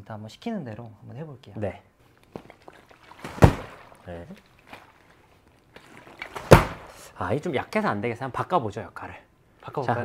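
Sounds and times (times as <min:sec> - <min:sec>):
heavy thud of bag impact: 0:03.2 - 0:04.0, 0:06.2 - 0:07.0.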